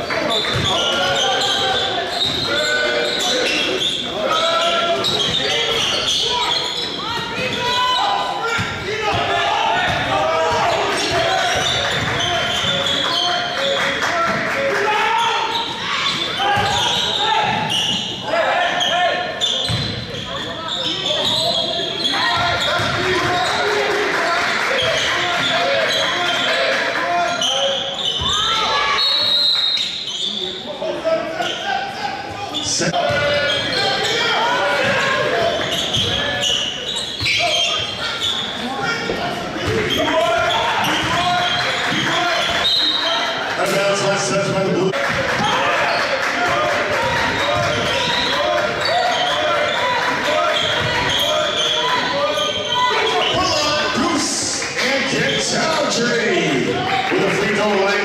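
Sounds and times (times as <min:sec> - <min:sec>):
echoing shouting and chatter: 0:00.0 - 0:58.0
basketball bouncing on gym floor: 0:19.6 - 0:20.0.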